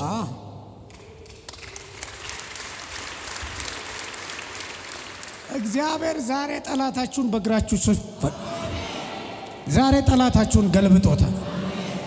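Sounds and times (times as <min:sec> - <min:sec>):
audience applauding: 0:00.9 - 0:06.3.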